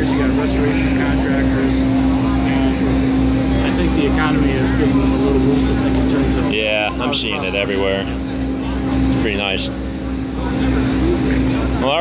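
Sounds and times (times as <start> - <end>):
engine droning: 0.0 - 12.0
people talking: 0.0 - 12.0.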